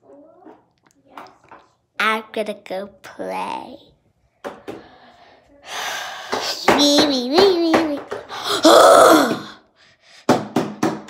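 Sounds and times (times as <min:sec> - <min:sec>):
child's wordless vocal sound: 0:05.6 - 0:09.6
plastic toys tapping countertop: 0:06.3 - 0:08.3, 0:10.3 - 0:11.0.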